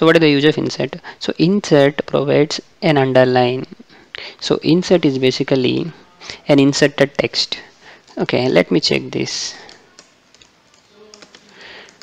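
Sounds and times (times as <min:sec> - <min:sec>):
keyboard typing: 0:09.2 - 0:12.0.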